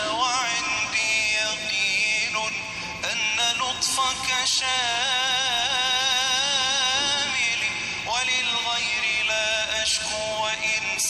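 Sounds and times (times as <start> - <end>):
person singing devotional verse: 0.0 - 11.0.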